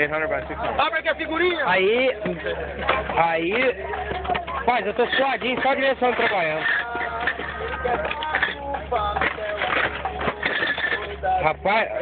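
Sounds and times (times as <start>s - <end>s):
glass bottles clinking: 0.0s - 12.0s
people talking: 0.0s - 12.0s.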